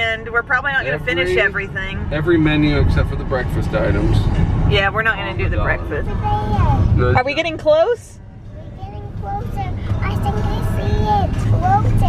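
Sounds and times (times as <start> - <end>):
girl singing sing-song: 8.6 - 12.0.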